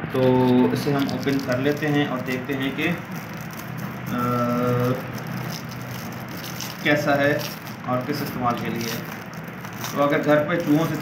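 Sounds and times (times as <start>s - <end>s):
plastic wrap crinkling: 0.2s - 11.0s.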